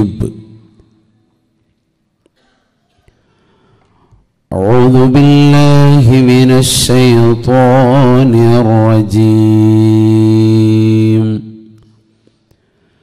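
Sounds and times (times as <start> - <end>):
man chanting recitation: 0.0 - 0.7, 4.5 - 11.8.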